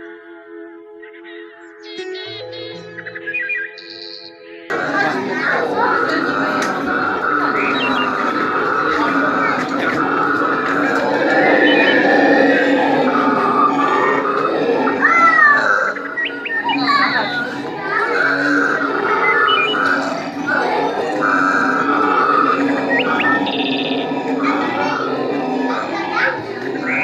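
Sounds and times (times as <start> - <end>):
high squeals: 4.7 - 27.0
hubbub of voices: 4.7 - 27.0.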